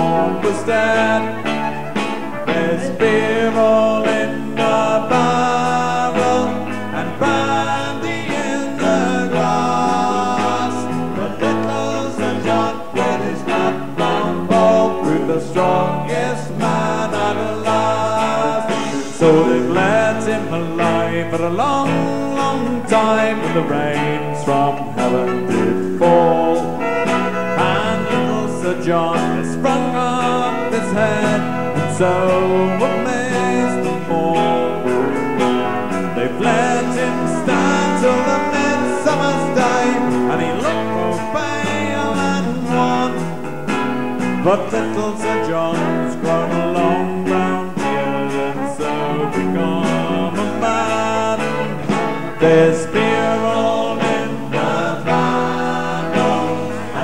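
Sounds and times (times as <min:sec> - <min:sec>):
bass guitar: 0:00.0 - 0:57.0
drums: 0:00.0 - 0:57.0
electric guitars: 0:00.0 - 0:57.0
man singing: 0:00.0 - 0:57.0.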